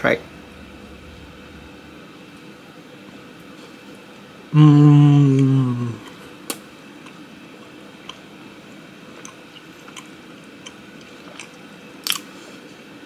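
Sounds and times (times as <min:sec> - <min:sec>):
person chewing: 0:09.0 - 0:12.5.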